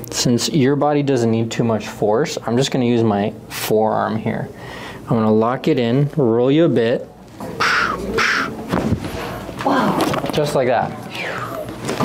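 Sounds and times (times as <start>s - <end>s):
breathy exhalations: 4.6s - 5.1s.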